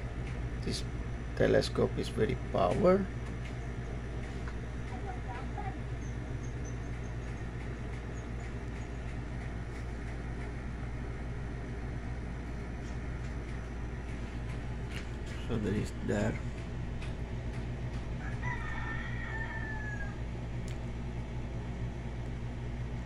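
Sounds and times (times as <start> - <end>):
low background rumble: 0.0 - 23.0.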